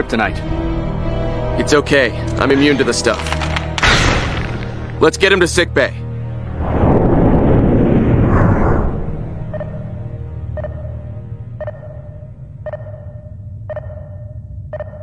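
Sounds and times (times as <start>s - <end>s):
loud noisy swell: 6.4s - 9.5s
heart monitor beeps: 9.5s - 9.9s, 10.6s - 15.0s.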